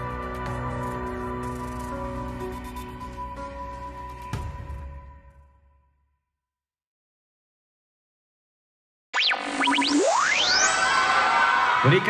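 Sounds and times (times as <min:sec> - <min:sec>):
falling whistle swoops: 0:09.2 - 0:12.0.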